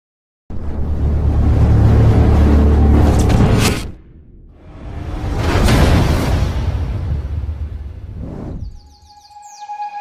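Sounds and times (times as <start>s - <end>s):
whooshing sound effect: 4.6s - 9.0s
background music: 8.9s - 10.0s.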